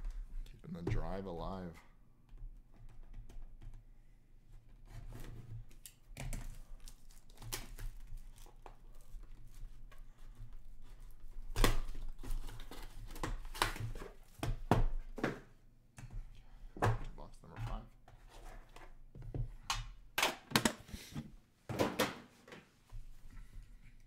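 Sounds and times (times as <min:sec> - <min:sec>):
shrink wrap tearing and crinkling: 0:05.7 - 0:09.6.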